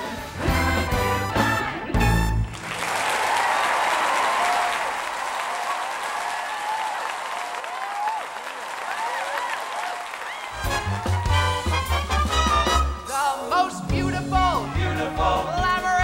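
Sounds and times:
audience applauding and cheering: 0:01.4 - 0:13.0.

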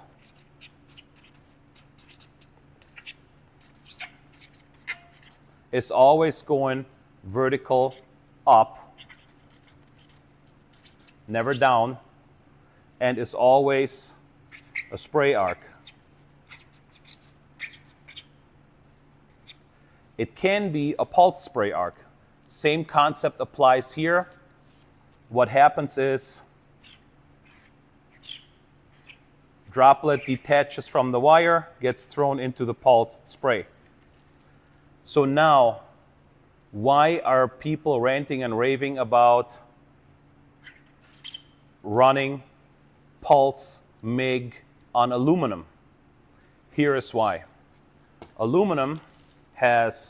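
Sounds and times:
marker squeaking on cardboard: 0:00.0 - 0:05.7, 0:07.7 - 0:11.9, 0:14.4 - 0:18.4, 0:19.2 - 0:19.7, 0:26.8 - 0:30.7, 0:40.6 - 0:41.6
low steady hum: 0:00.0 - 0:50.0.

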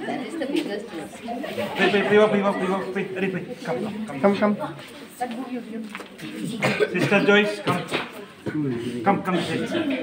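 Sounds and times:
people talking indistinctly: 0:00.0 - 0:10.0
person coughing: 0:06.6 - 0:07.3.

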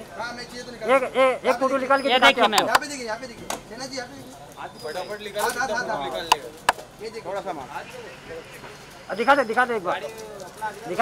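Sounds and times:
sharp clicks: 0:02.5 - 0:02.9.

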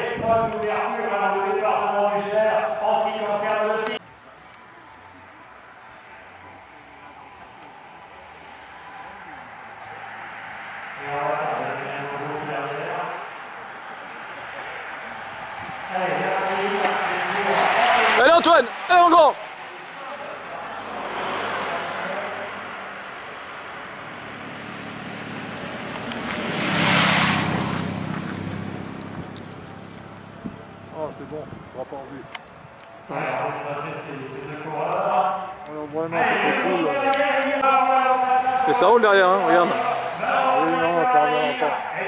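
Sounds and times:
car passing close: 0:06.0 - 0:42.0
voices shouting: 0:07.2 - 0:27.0, 0:32.1 - 0:42.0.

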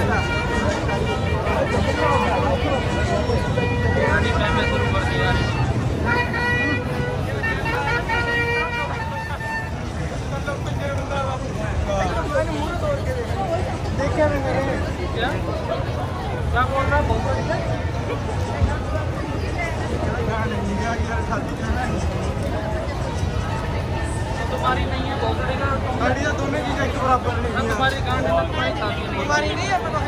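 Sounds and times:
passers-by talking: 0:00.0 - 0:30.0
traffic rumble: 0:00.0 - 0:30.0.

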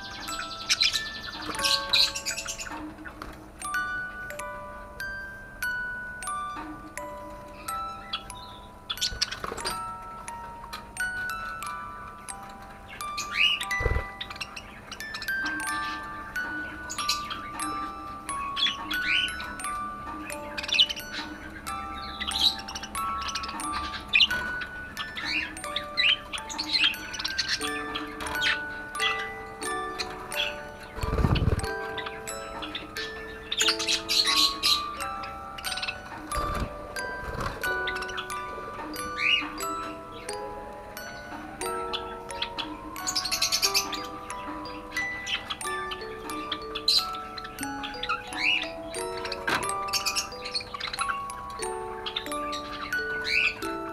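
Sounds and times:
budgerigars chirping: 0:00.0 - 0:05.0, 0:06.6 - 0:53.9
gentle chime-like music: 0:00.0 - 0:53.9.

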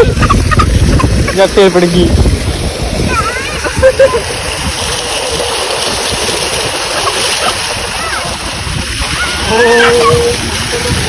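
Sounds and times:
water gushing and splashing: 0:00.0 - 0:11.0.

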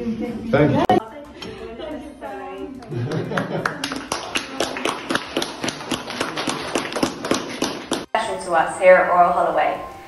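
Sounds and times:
small group clapping: 0:02.8 - 0:08.1.

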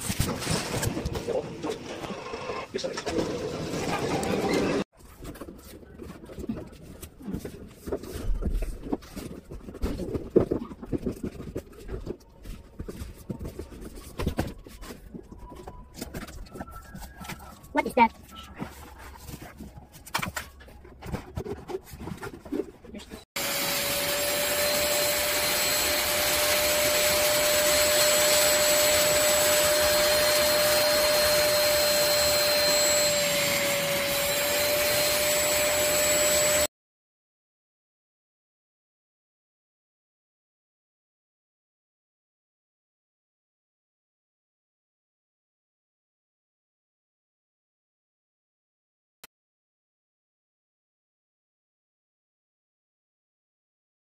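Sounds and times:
carpet washer suction whine: 0:23.4 - 0:36.7.

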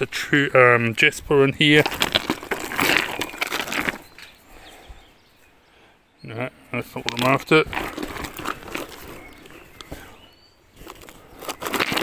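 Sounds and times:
bag rustling: 0:01.6 - 0:04.4, 0:07.0 - 0:12.0
stones clicking together: 0:01.8 - 0:04.4, 0:07.0 - 0:10.0, 0:10.8 - 0:12.0.

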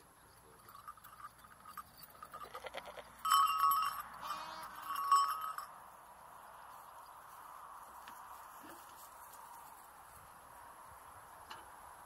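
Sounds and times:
goat bleating: 0:04.2 - 0:04.9.

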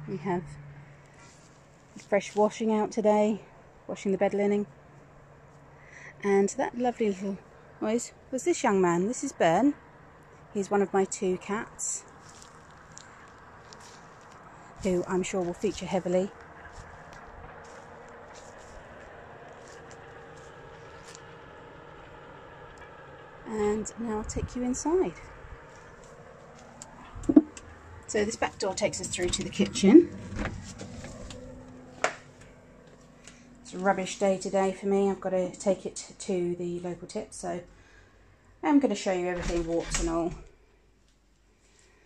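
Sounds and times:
steady low hum: 0:00.0 - 0:38.8.

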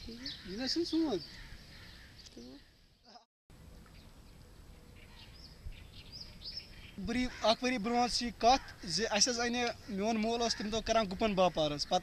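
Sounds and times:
faint birds chirping: 0:00.0 - 0:12.0.

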